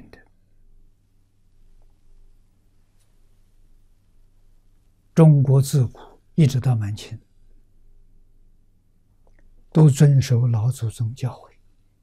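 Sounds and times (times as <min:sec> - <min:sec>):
man speaking: 0:00.0 - 0:00.3, 0:05.2 - 0:07.2, 0:09.7 - 0:11.6
steady low hum: 0:00.0 - 0:12.0.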